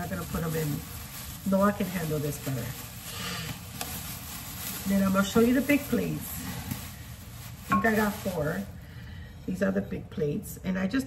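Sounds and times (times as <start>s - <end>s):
wrapping rustling: 0.0s - 9.7s.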